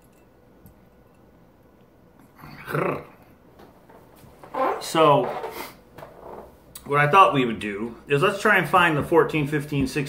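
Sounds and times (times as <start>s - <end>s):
man swallowing: 2.2s - 3.5s.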